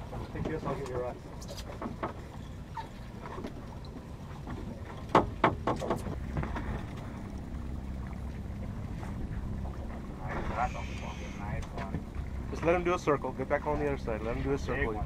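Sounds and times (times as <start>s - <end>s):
boat engine rumbling: 0.0s - 15.0s
sharp clicks and knocks: 5.1s - 6.6s.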